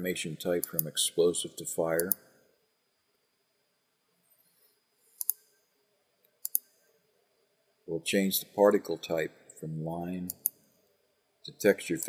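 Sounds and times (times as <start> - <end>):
computer mouse clicking: 0.6 - 0.9, 5.2 - 5.4, 6.3 - 6.7, 10.3 - 10.6.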